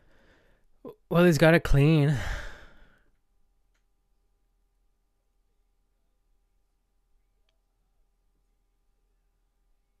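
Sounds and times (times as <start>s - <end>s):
man's voice trailing off: 0.9s - 2.6s
breathy sigh: 2.1s - 3.1s.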